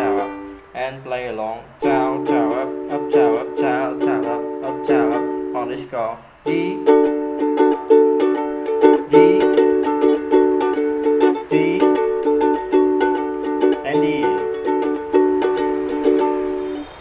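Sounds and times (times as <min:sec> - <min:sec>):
ukulele strumming: 0:00.0 - 0:17.0.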